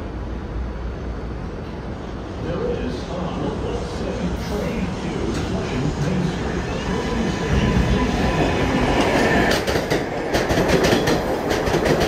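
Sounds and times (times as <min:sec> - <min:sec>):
subway train rumbling: 0:00.0 - 0:12.0.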